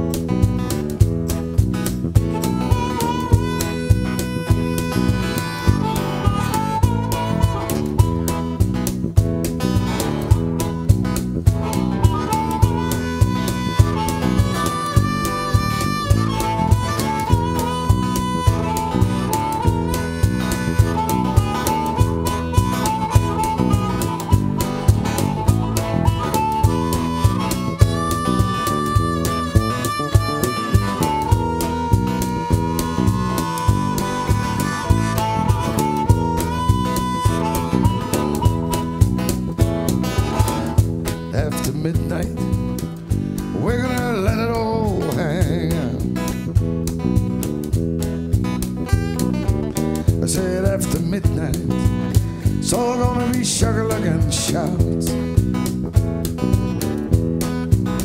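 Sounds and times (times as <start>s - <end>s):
bass guitar: 0.0s - 58.0s
blues harmonica solo: 0.0s - 58.0s
cajon beat: 0.0s - 58.0s
guitar: 0.0s - 58.0s.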